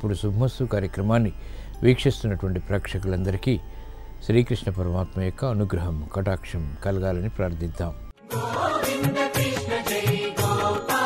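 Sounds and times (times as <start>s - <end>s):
sustained melodic instruments: 0.1s - 8.8s.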